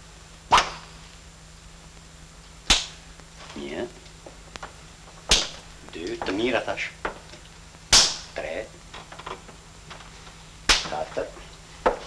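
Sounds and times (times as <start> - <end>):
sharp crack of a blow: 0.5 - 1.0, 2.7 - 3.0, 5.3 - 5.6, 7.9 - 8.4, 10.7 - 11.0.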